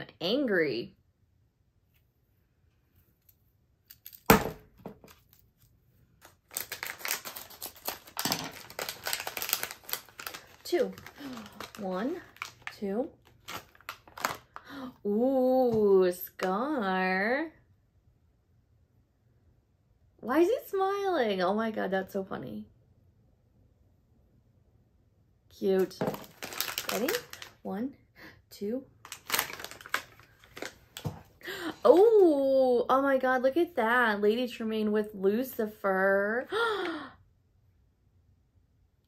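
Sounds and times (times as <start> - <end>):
foil packet tearing and crinkling: 6.2 - 14.7, 26.1 - 27.6, 29.0 - 31.1.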